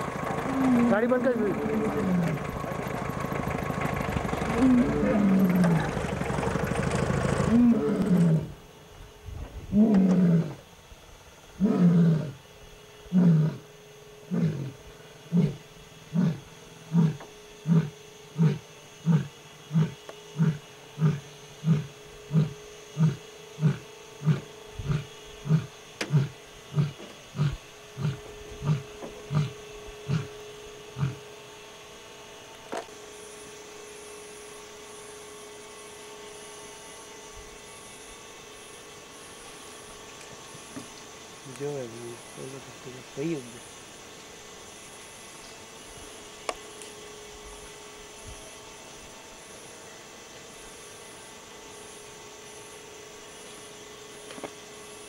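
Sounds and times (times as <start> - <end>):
lion roaring and grunting: 0.4 - 1.2, 4.5 - 6.1, 7.4 - 8.6, 9.7 - 10.6, 11.6 - 12.4, 13.1 - 13.7, 14.3 - 30.3, 31.0 - 31.2.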